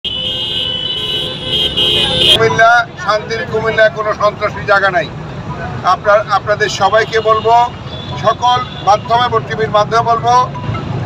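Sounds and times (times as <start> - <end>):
motorcycle horns blaring: 0.0 - 2.5, 6.8 - 9.4
motorcycle engines rumbling: 0.0 - 11.0.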